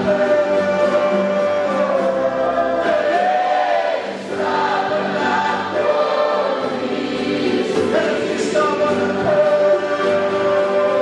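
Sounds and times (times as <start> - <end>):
group singing worship song: 0.0 - 11.0.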